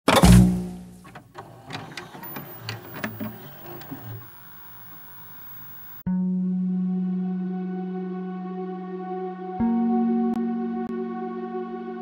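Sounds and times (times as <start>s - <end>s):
faint steady hiss and hum: 0.8s - 6.0s
glitch clicks and crackles: 2.2s - 6.0s.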